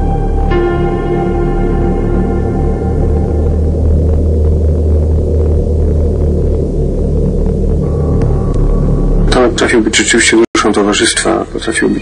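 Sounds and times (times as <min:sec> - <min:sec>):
dark ambient drone: 0:00.0 - 0:12.0.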